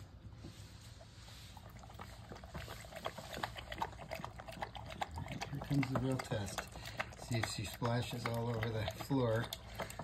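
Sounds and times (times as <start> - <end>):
dog lapping water: 1.0 - 10.0.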